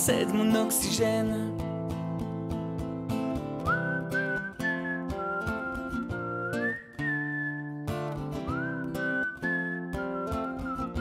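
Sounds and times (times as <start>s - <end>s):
strummed acoustic guitar: 0.0s - 11.0s
whistled melody: 3.5s - 11.0s.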